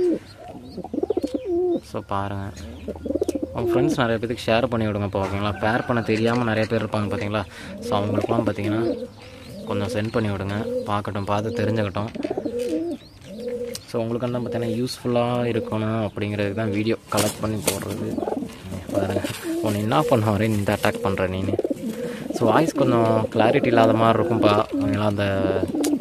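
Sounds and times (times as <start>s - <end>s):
pigeons cooing: 0.0s - 26.0s.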